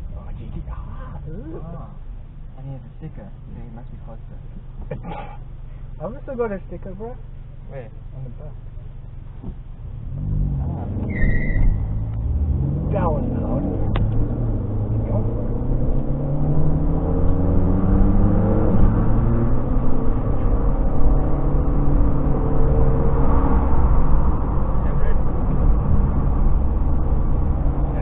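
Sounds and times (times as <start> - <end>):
car engine accelerating: 0.0 - 28.0
low road rumble: 0.0 - 28.0.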